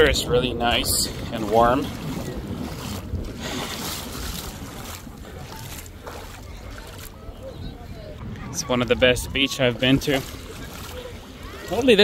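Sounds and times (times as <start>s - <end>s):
shallow sea water washing: 0.0s - 12.0s
water splashing while wading: 0.0s - 12.0s
wind buffeting microphone: 0.0s - 12.0s.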